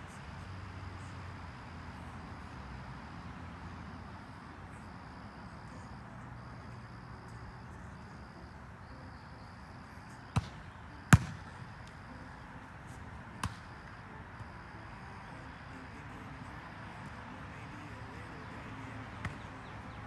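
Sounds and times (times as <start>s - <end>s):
hands slapping volleyball: 13.4s - 13.7s, 19.2s - 19.5s.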